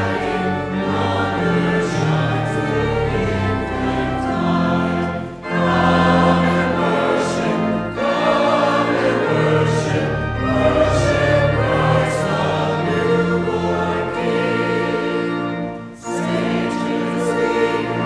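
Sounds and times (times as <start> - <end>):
church choir singing: 0.0 - 18.0.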